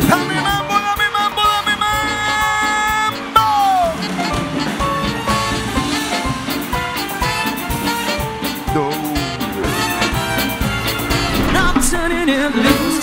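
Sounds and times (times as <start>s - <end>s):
live dance band music: 0.0s - 13.0s.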